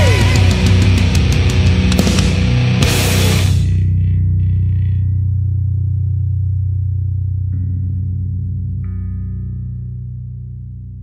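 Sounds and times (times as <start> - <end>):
distorted guitar and bass chord: 0.0 - 11.0.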